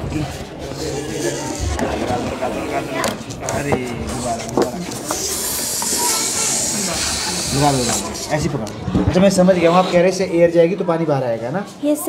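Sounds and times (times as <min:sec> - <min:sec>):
air hissing out of balloon: 0:05.1 - 0:08.3.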